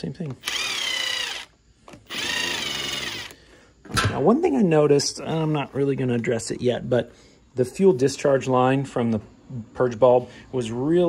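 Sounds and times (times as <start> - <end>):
cordless drill whining: 0.4 - 3.4.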